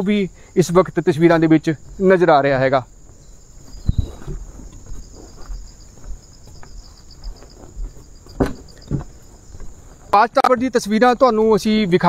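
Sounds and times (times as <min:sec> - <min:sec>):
insects trilling: 0:00.0 - 0:12.0
pulsing insect chirp: 0:00.0 - 0:12.0
footsteps on wooden boardwalk: 0:00.2 - 0:12.0.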